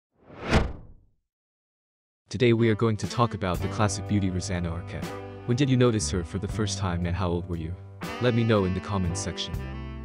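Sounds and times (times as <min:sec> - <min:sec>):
whoosh: 0:00.2 - 0:01.0.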